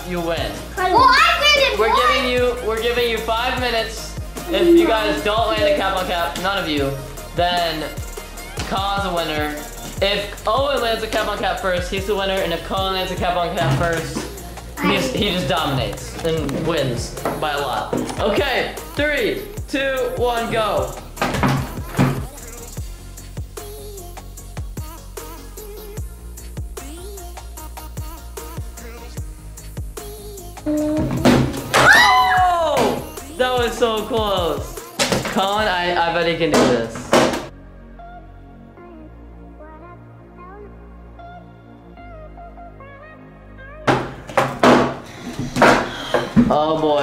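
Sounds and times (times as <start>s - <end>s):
electronic background music: 0.0s - 47.0s
electronic dance music: 4.0s - 5.8s
plastic bottles knocking on table: 43.9s - 46.6s.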